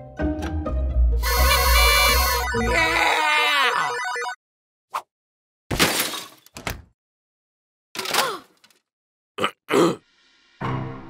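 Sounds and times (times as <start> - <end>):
cartoon voice groan: 1.2 - 4.0
cartoon voice grunts: 1.2 - 4.0, 9.4 - 10.0.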